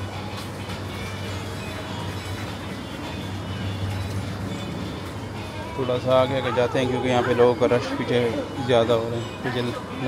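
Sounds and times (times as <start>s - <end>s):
faint background music: 0.0s - 10.0s
refrigerated display cases droning: 0.0s - 10.0s.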